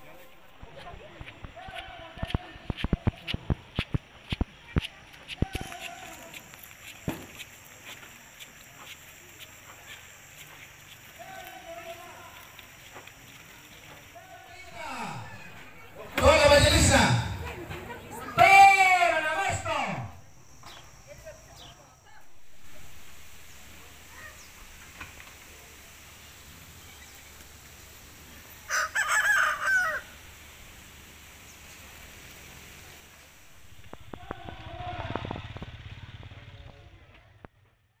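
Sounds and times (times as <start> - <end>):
rooster crowing: 28.6 - 30.3.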